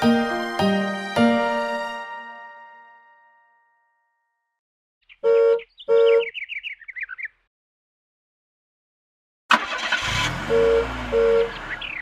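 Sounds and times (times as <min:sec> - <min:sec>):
falling bird-like chirps: 0:05.0 - 0:07.5, 0:11.4 - 0:12.0.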